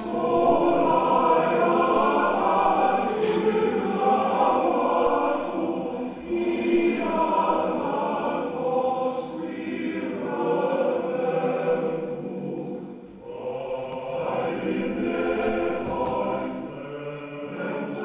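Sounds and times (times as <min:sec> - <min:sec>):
choir singing long notes: 0:00.0 - 0:18.0.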